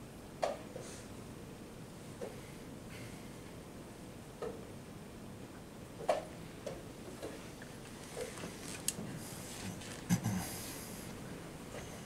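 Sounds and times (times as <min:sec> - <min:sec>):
low steady room noise: 0:00.0 - 0:12.0
faint clicks and taps: 0:06.0 - 0:09.0.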